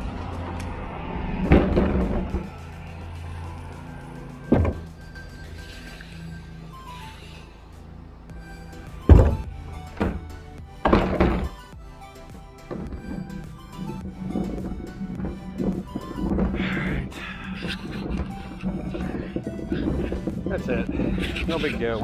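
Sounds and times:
background music: 0.0 - 22.0.

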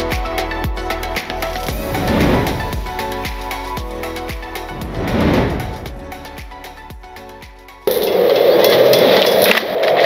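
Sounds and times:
background music hit: 1.7 - 6.6.

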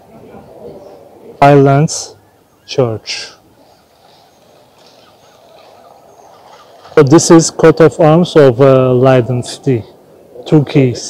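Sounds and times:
distant bird chirps: 0.0 - 11.0
faint low city rumble: 0.0 - 11.0.

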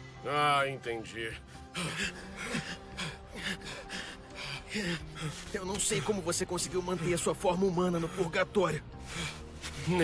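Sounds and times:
men panting: 1.5 - 7.2, 9.0 - 10.0.

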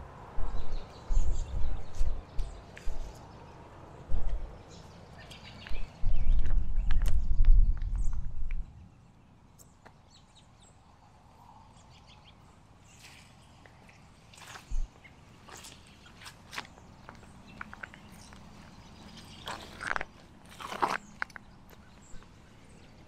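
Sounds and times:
low rumble: 0.0 - 3.2
bird chirps: 4.4 - 10.8
fruit crackling underfoot: 13.2 - 21.8.

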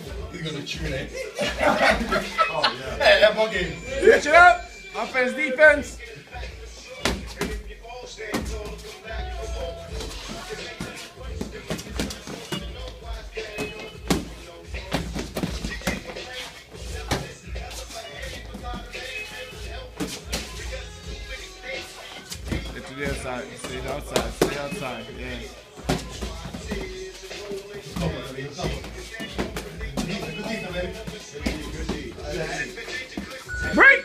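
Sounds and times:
background music: 0.0 - 34.0.

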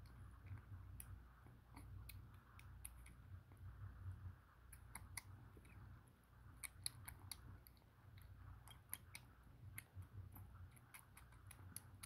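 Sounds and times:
kitten chewing and licking: 0.0 - 12.0.

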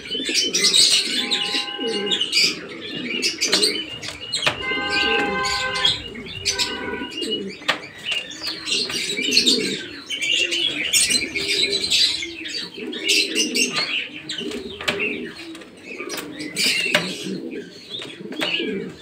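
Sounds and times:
high chirping calls: 0.0 - 16.1
pigeons cooing: 0.0 - 19.0.

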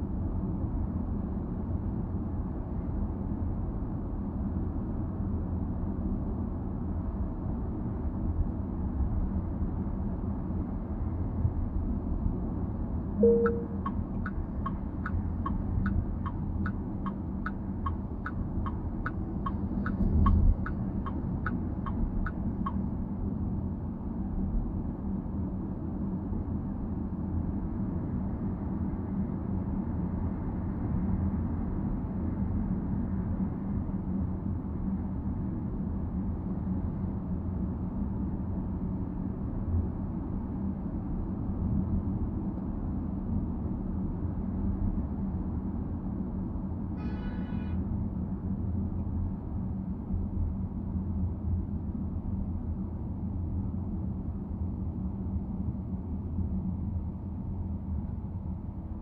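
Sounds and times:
car road and tyre noise: 0.0 - 59.0
short tone: 13.2 - 13.9
turn signal ticking: 13.2 - 22.8.

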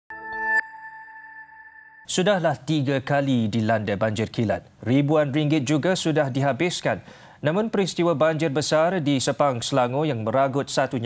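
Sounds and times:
bell-like tone ringing: 0.1 - 2.1.

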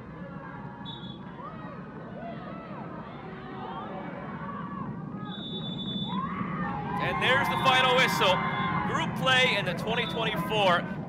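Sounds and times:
open-air ambience: 0.0 - 11.0
players shouting and calling: 0.0 - 11.0.

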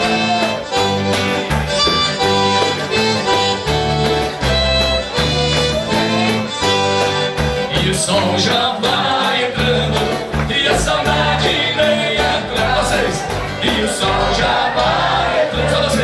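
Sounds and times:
piano accordion: 0.0 - 13.6
acoustic guitar: 0.0 - 16.0.

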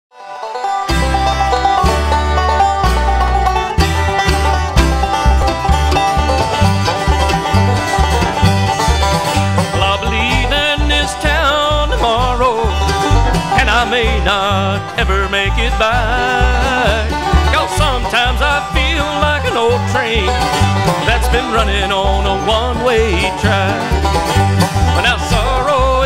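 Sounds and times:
banjo picking: 0.1 - 26.0
guitar picking: 0.2 - 26.0
pulsing bass: 0.9 - 26.0.

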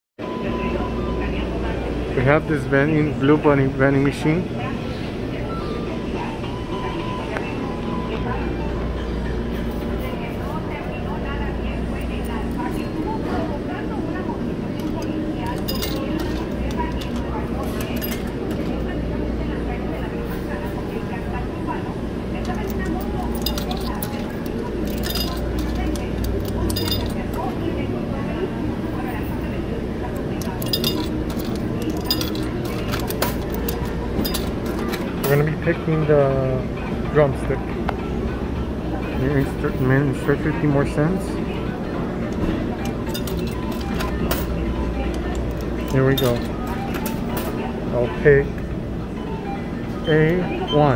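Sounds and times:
indistinct voices: 0.2 - 50.9
low machine hum: 0.2 - 50.9
metallic clinks: 14.8 - 17.2, 22.5 - 27.3, 30.4 - 35.4, 42.8 - 44.5.

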